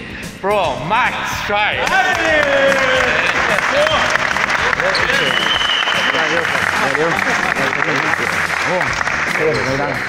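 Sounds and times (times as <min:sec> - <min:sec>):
man shouting a cheer: 0:01.7 - 0:04.2
group applause: 0:01.8 - 0:10.0.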